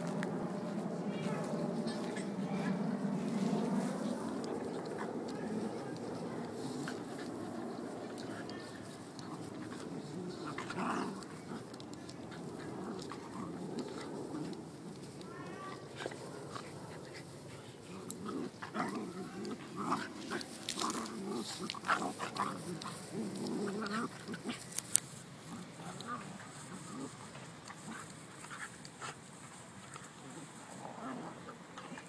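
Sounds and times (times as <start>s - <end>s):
dogs growling and grunting: 1.1s - 15.0s, 15.8s - 24.7s, 25.4s - 28.7s, 30.2s - 32.0s.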